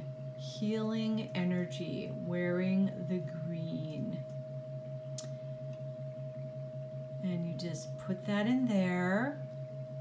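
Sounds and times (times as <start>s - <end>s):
pulsing low hum: 0.0s - 10.0s
sharp click: 5.2s - 5.4s.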